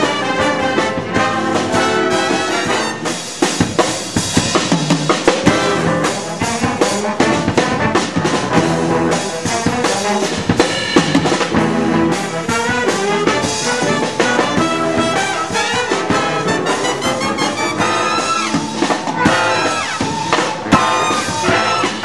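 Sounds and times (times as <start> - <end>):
jazz big band playing: 0.0 - 22.0.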